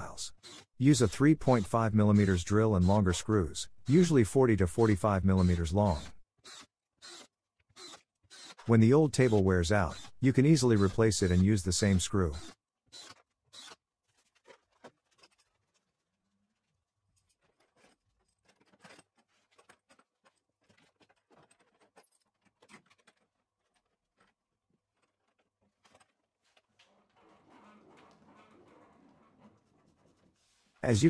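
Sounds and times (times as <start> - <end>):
metal clamps rubbing: 17.2 - 24.3.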